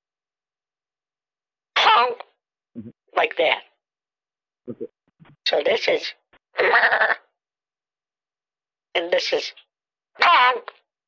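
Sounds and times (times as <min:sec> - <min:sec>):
goat bleating: 0:06.6 - 0:07.3.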